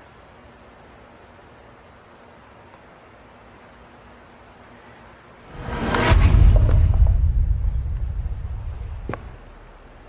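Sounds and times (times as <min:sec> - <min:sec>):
deep rumbling boom: 0:05.5 - 0:09.9.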